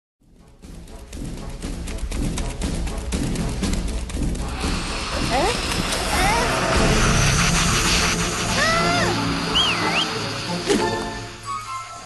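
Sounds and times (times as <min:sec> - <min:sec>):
film soundtrack music: 0:00.2 - 0:12.0
rush of noise: 0:04.5 - 0:11.5
high swooping whistle: 0:08.5 - 0:10.6.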